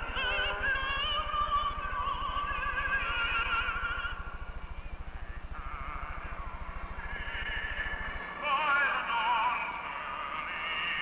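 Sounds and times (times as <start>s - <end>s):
high voice singing with vibrato: 0.0s - 11.0s
low steady hum: 0.0s - 11.0s.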